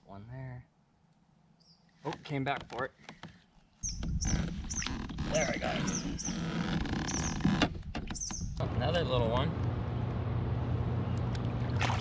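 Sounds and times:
high bird chirps: 3.8 - 5.0, 5.8 - 7.5, 8.1 - 8.6
loud water splash: 11.6 - 12.0.

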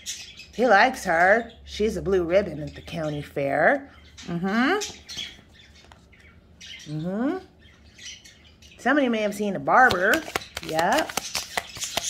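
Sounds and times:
cards shuffling: 9.8 - 12.0.

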